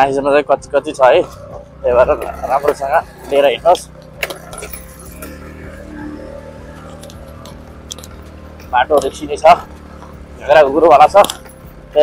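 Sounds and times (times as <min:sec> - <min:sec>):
motorcycle idling: 0:00.0 - 0:12.0.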